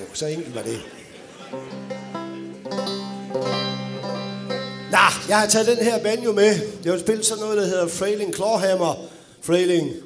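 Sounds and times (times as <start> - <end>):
banjo strings plucked: 1.5 - 7.4.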